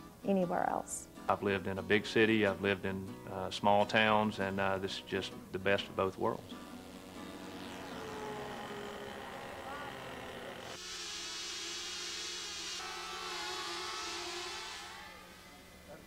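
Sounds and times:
model airplane engine running: 0:06.8 - 0:16.0.

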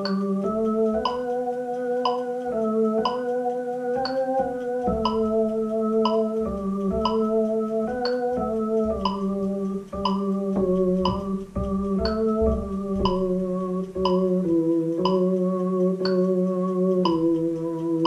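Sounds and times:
electronic keyboard chords: 0:00.0 - 0:18.0.

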